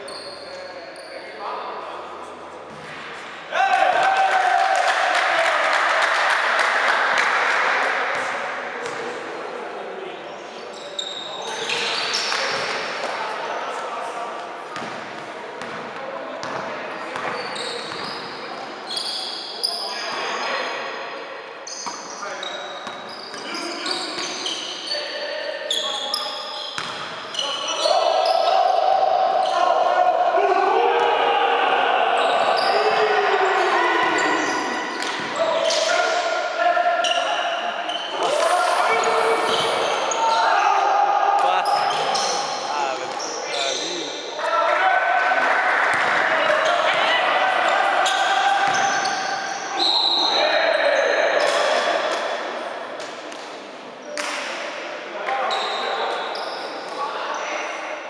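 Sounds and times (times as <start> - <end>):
sneakers squeaking on court floor: 0.0 - 1.4, 10.6 - 12.8, 14.7 - 15.8, 16.4 - 20.8, 21.6 - 28.6, 37.0 - 40.5, 41.6 - 44.2, 48.0 - 51.6, 55.4 - 57.5.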